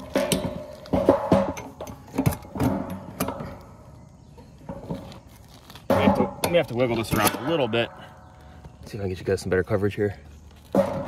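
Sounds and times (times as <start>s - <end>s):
metal satellite dish clanking: 0.0s - 3.8s, 5.8s - 8.2s, 10.6s - 11.0s.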